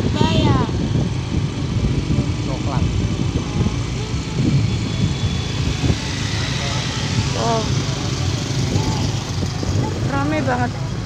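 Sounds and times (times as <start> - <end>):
cars passing close: 0.0 - 11.0
motor scooter passing: 0.0 - 11.0
street traffic rumble: 0.0 - 11.0.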